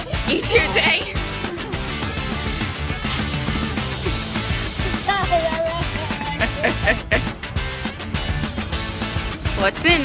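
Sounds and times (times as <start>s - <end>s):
upbeat rock music: 0.0s - 10.0s
spray can hissing: 1.2s - 5.6s.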